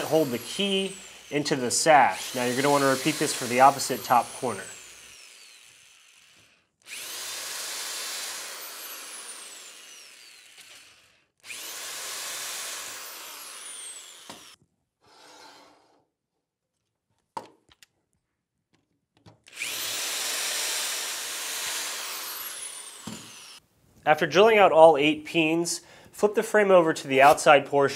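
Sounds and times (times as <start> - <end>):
electric drill whining: 0.0 - 14.6, 19.5 - 23.6.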